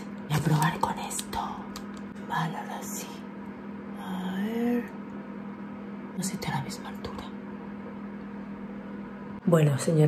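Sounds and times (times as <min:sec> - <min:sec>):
steady low hum: 0:00.0 - 0:10.0
woman whispering: 0:00.4 - 0:03.3, 0:06.2 - 0:07.4.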